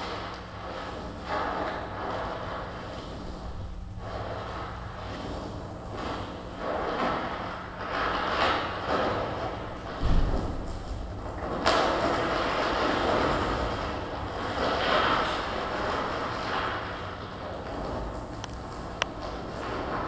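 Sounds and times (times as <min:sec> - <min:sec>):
harsh scraping and rubbing noise: 0:00.0 - 0:20.0
low thud: 0:09.9 - 0:11.8.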